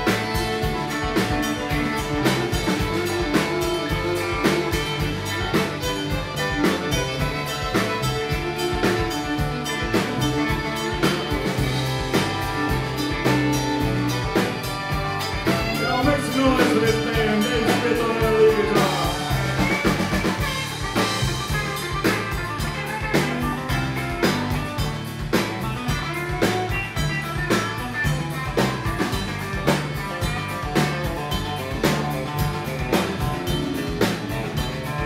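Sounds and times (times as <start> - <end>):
drum kit beat: 0.0 - 35.0
electric and acoustic guitars: 0.0 - 35.0
fiddle: 0.0 - 35.0.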